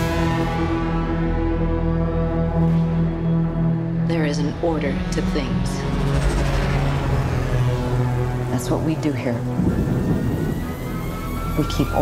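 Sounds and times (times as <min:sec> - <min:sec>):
low synthesizer drone: 0:00.0 - 0:12.0
rush of noise: 0:05.5 - 0:11.6.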